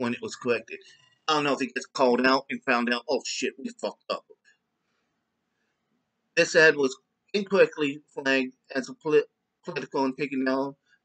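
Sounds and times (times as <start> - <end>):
man speaking: 0.0 - 4.3, 6.4 - 10.7.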